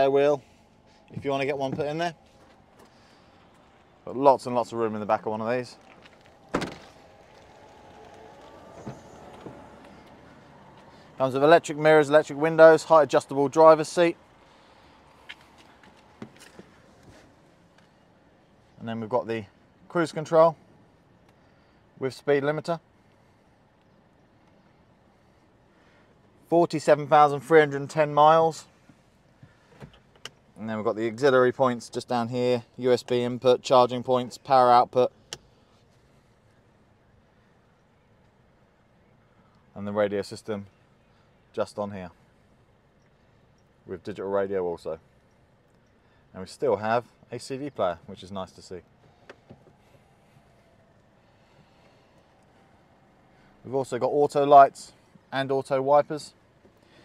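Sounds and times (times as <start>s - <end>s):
faint outdoor background hum: 0.0s - 57.0s.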